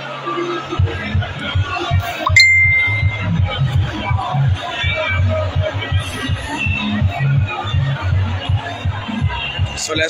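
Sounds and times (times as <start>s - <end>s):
background music with low beat: 2.3s - 4.6s.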